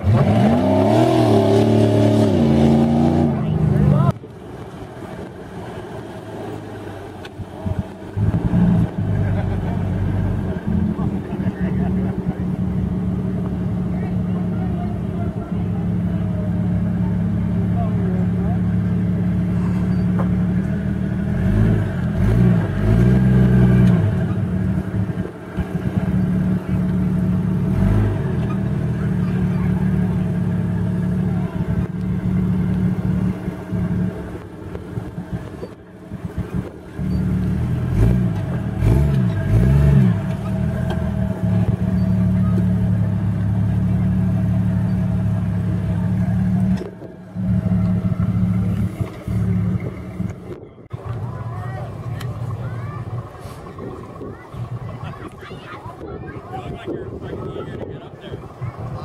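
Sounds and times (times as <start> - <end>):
engine revving under load: 0.0 - 4.2, 6.2 - 59.0.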